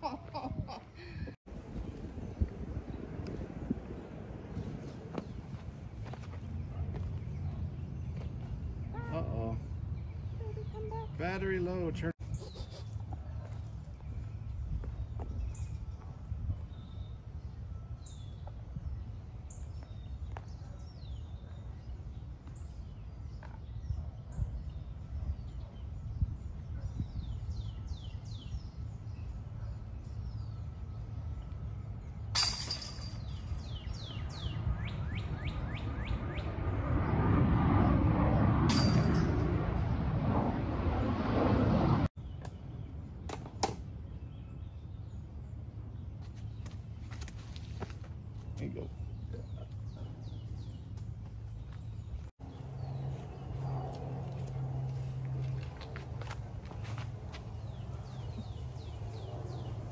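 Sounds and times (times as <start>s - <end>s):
steady low rumble: 0.2s - 10.4s, 28.5s - 43.2s
small birds chirping: 42.2s - 55.5s, 56.6s - 59.9s.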